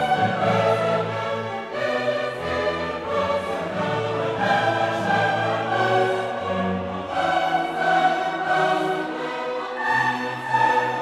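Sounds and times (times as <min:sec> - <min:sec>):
orchestral music with choir: 0:00.0 - 0:11.0.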